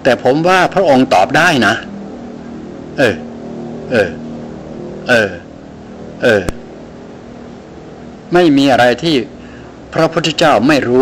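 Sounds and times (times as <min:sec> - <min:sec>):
steady background hum: 0:00.0 - 0:11.0
man saying er: 0:03.0 - 0:04.2, 0:05.0 - 0:05.5, 0:06.2 - 0:06.6.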